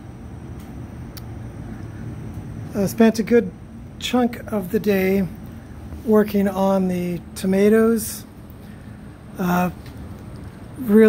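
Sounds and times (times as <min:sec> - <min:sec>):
industrial fans rumbling: 0:00.0 - 0:11.0.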